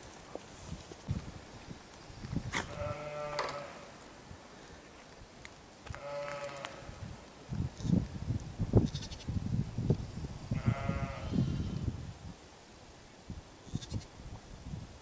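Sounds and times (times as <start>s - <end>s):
sheep bleating: 2.6s - 3.9s, 5.9s - 6.9s, 10.6s - 11.6s.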